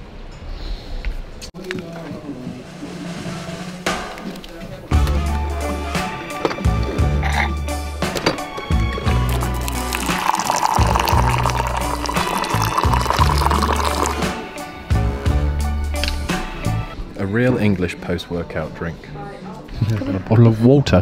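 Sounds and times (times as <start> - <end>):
background music with steady beat: 2.2 - 17.6
hot water pouring into cup: 9.2 - 14.4.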